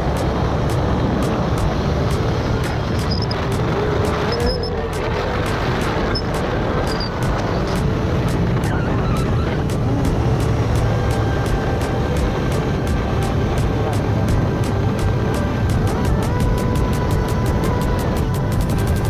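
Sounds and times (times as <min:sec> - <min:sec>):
motorcycle engine running: 0:00.0 - 0:19.0
wind rush on microphone: 0:00.0 - 0:19.0.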